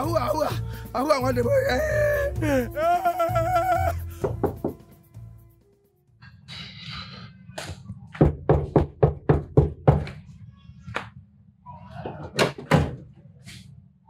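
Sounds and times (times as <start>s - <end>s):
music: 0.0s - 9.8s
man crying out in pain: 1.5s - 4.4s
knocks on a panelled door: 4.2s - 4.8s, 8.2s - 10.1s.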